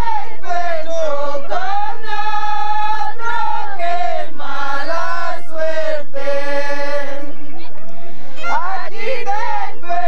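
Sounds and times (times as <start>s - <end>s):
women singing together: 0.0s - 7.7s, 8.4s - 10.0s.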